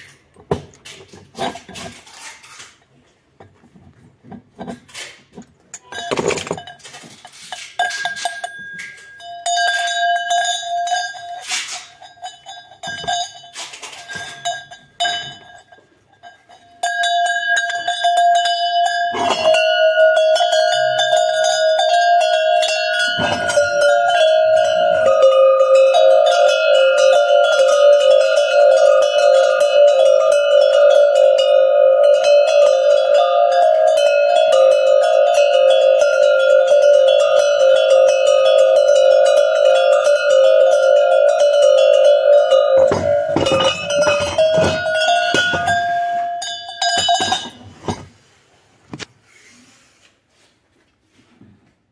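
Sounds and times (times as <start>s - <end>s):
bells set down with clunks: 3.4s - 11.4s, 12.0s - 17.8s, 18.8s - 48.2s
metal goat bells clanging: 5.8s - 48.0s.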